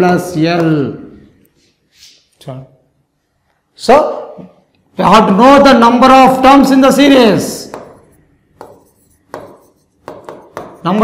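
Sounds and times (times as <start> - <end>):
marker tip tapping whiteboard: 7.6 - 11.0.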